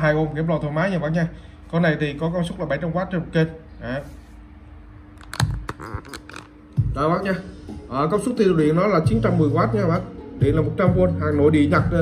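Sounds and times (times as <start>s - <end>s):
faint steady hum: 0.0s - 12.0s
phone handling clicks: 5.2s - 6.5s.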